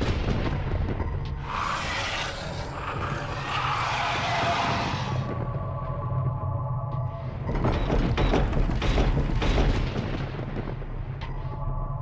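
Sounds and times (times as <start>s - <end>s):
dramatic music with low drone: 0.0s - 12.0s.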